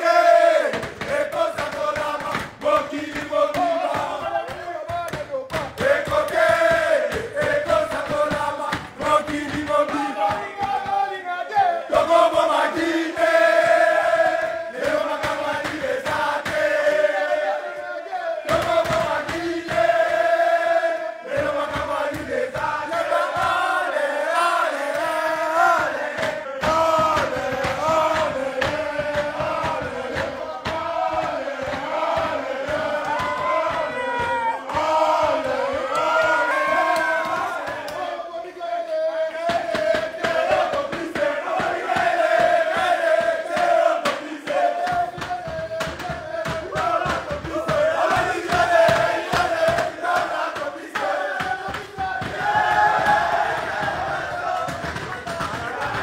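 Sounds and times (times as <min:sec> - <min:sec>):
men chanting and singing: 0:00.0 - 0:56.0.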